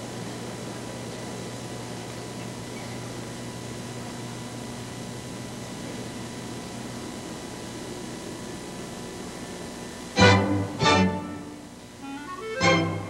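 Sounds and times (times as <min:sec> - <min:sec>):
loud orchestral chords: 0:10.2 - 0:13.0.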